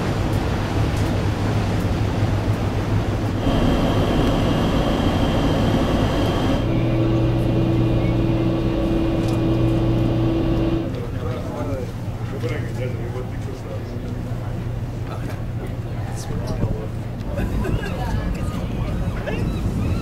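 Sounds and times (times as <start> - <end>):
ferry engines droning: 0.0 - 20.0
higher steady hum: 3.0 - 11.1.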